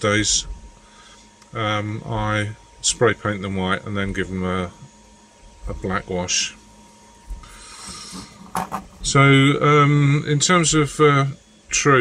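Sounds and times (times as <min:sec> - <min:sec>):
person drawing a breath: 0:00.8 - 0:01.3, 0:07.4 - 0:08.4.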